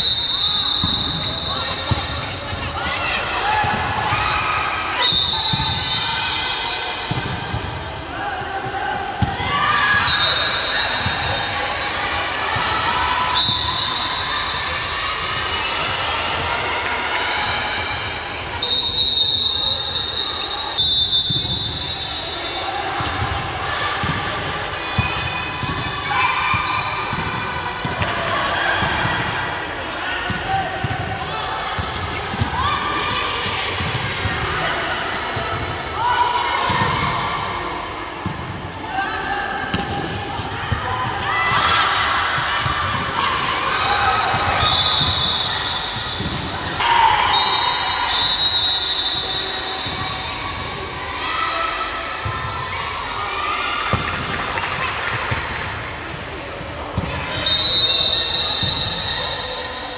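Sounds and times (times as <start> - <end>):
referee's whistle blast: 0.0 - 2.3, 5.0 - 6.2, 18.6 - 22.5, 44.5 - 50.3, 57.4 - 59.7
sports hall noise: 0.0 - 59.9.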